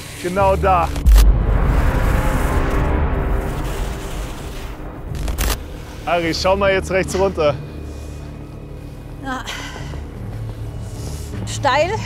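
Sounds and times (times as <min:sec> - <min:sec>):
music: 0:00.0 - 0:12.0
dense rumbling noise: 0:00.4 - 0:07.8
deep boom: 0:00.8 - 0:07.0.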